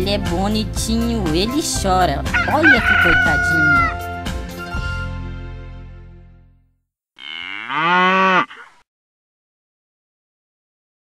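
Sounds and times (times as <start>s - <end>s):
cow mooing: 7.2s - 8.8s.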